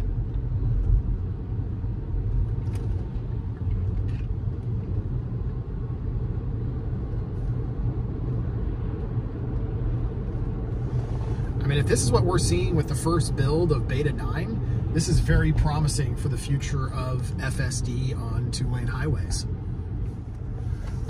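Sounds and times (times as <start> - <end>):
road and tyre noise: 0.0 - 21.0.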